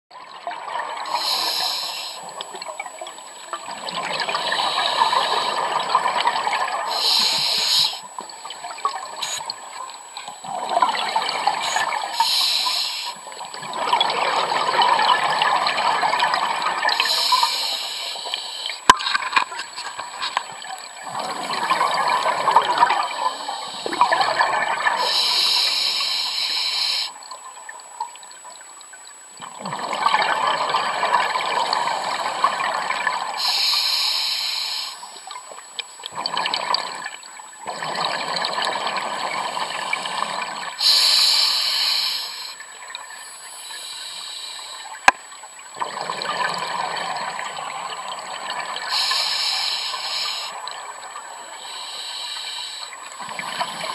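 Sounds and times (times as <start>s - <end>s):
regulator inhale hiss: 1.1s - 2.3s, 4.4s - 5.7s, 6.9s - 8.1s, 9.2s - 9.4s, 11.6s - 13.3s, 17.0s - 18.8s, 23.3s - 24.1s, 25.0s - 27.2s, 33.4s - 35.2s, 40.8s - 42.6s, 43.2s - 45.0s, 48.9s - 50.6s, 51.6s - 53.0s
exhaled bubbles burbling: 2.2s - 9.8s, 10.4s - 12.2s, 13.3s - 17.2s, 20.0s - 25.2s, 29.4s - 33.4s, 36.1s - 40.8s, 44.9s - 49.0s.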